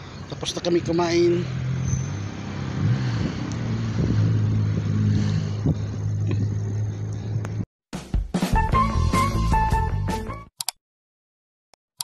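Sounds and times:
vehicle engine running: 0.1s - 7.6s.

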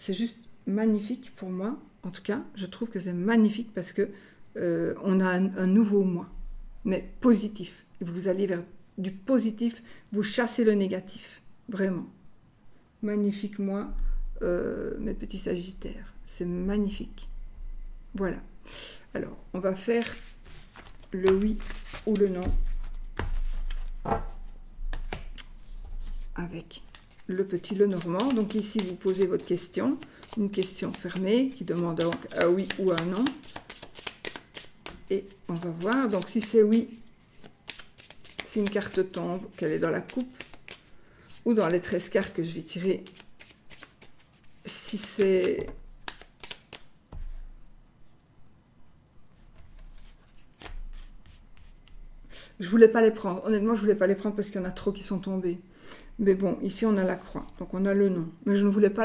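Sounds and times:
cards rustling: 20.0s - 24.0s, 24.9s - 46.8s
cards clicking on table: 32.0s - 35.0s, 45.0s - 46.8s.

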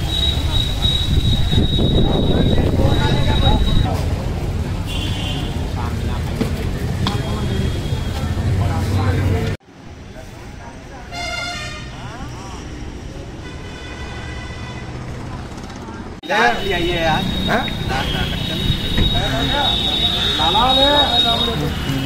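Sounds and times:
crowd voices: 0.0s - 13.4s, 15.0s - 22.0s
road traffic: 0.0s - 22.0s
vehicle horn: 4.9s - 5.6s, 11.1s - 12.0s, 13.4s - 15.0s, 16.5s - 22.0s.

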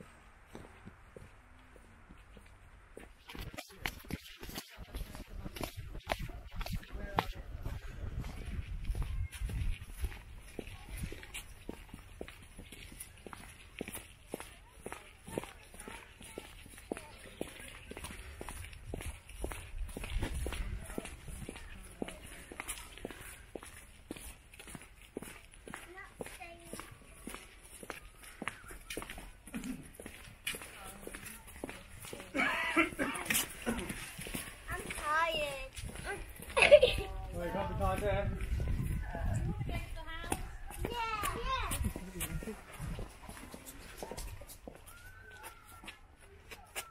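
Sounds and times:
footsteps on dirt and stone: 0.0s - 46.9s
voices: 3.3s - 46.9s
wind rumble on microphone: 4.8s - 11.3s, 36.8s - 43.2s.

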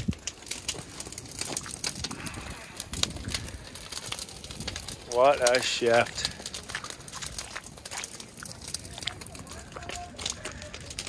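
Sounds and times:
fire crackling with snaps and pops: 0.0s - 11.0s.

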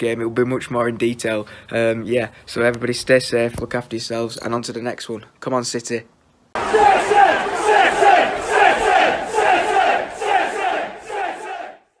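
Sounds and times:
football crowd chanting: 6.6s - 12.0s.

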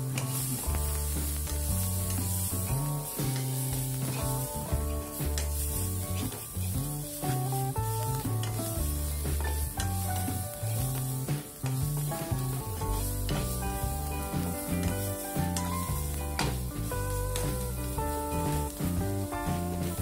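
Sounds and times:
background music with bass: 0.0s - 20.0s
masala sizzling in oil: 0.0s - 20.0s
spatula scraping and tapping pan: 0.0s - 20.0s.

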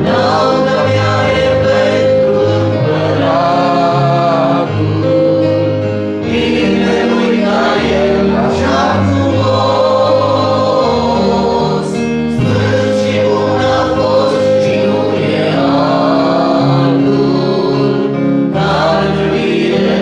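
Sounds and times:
congregation singing: 0.0s - 20.0s
instrumental accompaniment: 0.0s - 20.0s.

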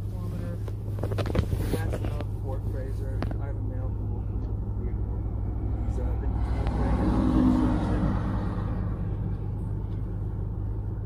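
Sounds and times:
car engine idling: 0.0s - 11.0s
passing traffic rush: 0.0s - 11.0s.

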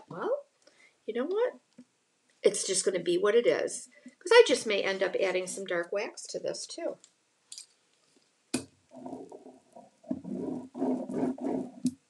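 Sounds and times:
hand rubbing sheet on wood: 9.0s - 12.0s.

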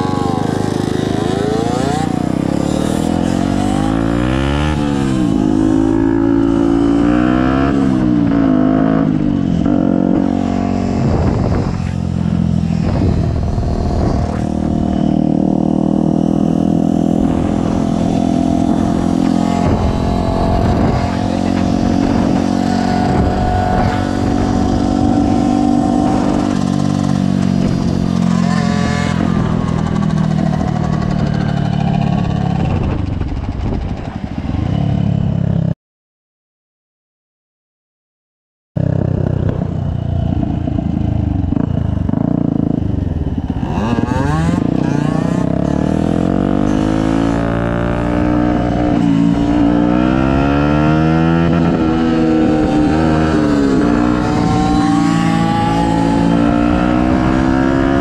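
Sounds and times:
motorcycle engines revving: 0.0s - 35.7s, 38.8s - 58.0s.

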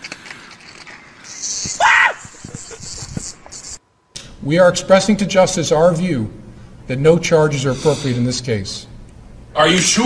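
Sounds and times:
cartoon character screaming: 1.8s - 2.2s.

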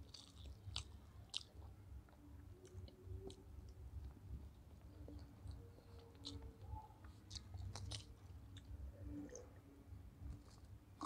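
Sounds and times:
chewing: 0.0s - 9.6s, 10.3s - 11.0s.

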